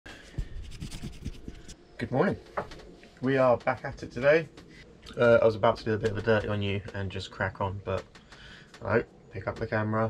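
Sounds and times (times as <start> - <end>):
camera handling scratching and rubbing: 0.6 - 1.8
small knocks: 5.8 - 7.2.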